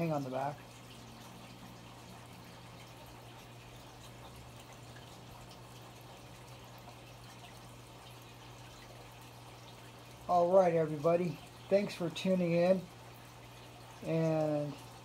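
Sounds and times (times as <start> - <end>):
water trickling and dripping: 0.0 - 15.0.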